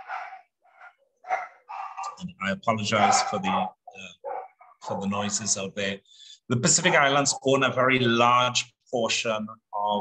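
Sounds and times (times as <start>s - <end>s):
dog barking: 0.0s - 2.2s, 2.9s - 5.4s.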